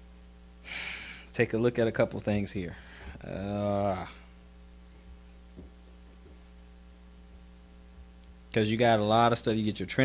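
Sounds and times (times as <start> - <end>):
electrical mains hum: 0.0 - 10.0
faint soft taps: 5.5 - 6.4.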